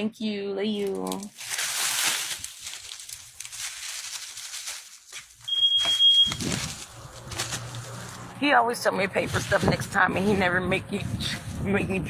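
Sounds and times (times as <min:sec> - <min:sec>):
handling and rustling noise: 0:00.7 - 0:08.3
high-pitched electronic beep: 0:05.5 - 0:06.4.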